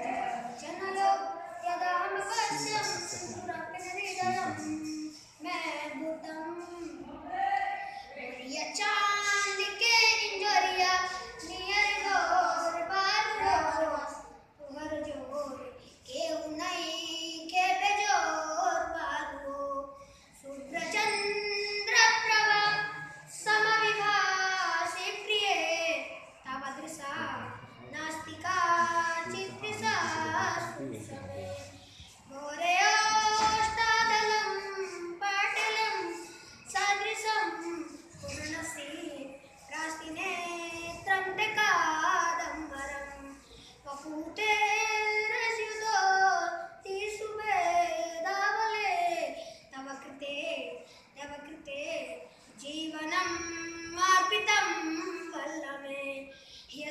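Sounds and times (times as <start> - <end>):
boy singing: 0.0 - 56.9.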